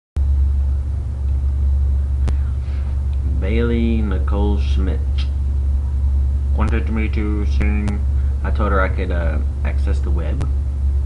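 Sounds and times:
loud low hum: 0.2 - 11.0.

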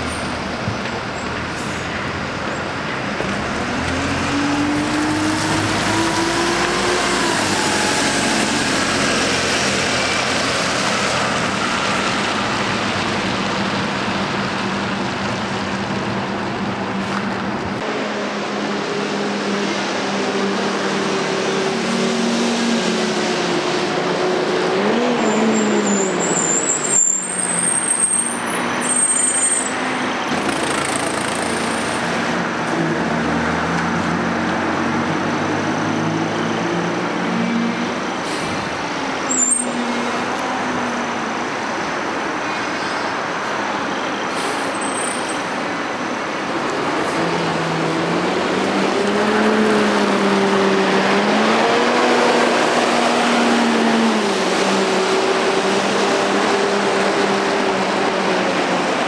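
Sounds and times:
diesel buses accelerating: 0.0 - 59.0
traffic noise: 0.0 - 59.0
short high-pitched squeals: 39.3 - 39.9.

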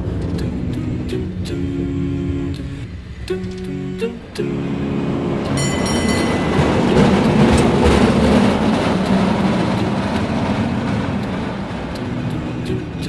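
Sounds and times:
gondola carriage rumbling and clattering: 0.0 - 1.6, 2.5 - 13.0.

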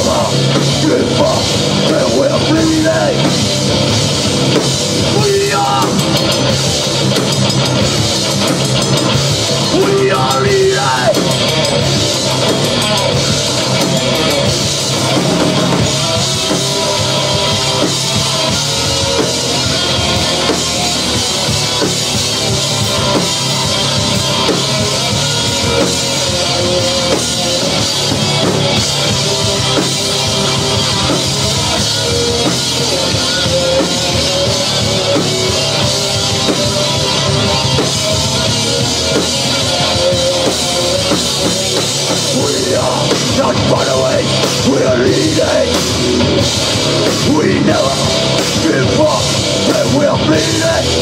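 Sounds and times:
distorted electric guitars: 0.0 - 51.0
heavy rock band playing: 0.0 - 51.0
pounding drum kit: 0.0 - 51.0.

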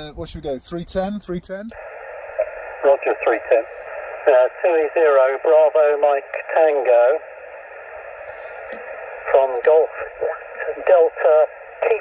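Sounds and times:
radio receiver hiss: 1.7 - 12.0.

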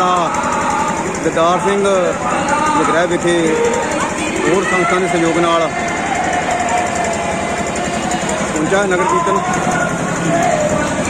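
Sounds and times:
engine running with rapid beat: 0.0 - 11.0.

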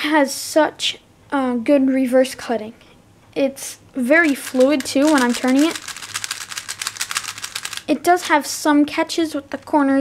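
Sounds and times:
puzzle cube plastic clicks: 4.2 - 8.4.

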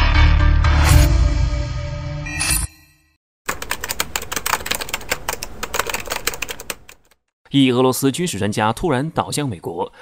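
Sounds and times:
rapid keyboard typing clicks: 3.5 - 7.2.

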